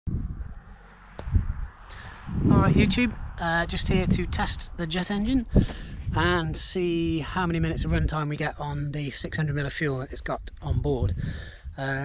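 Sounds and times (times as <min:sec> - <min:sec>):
wind rumble on microphone: 0:00.1 - 0:12.0.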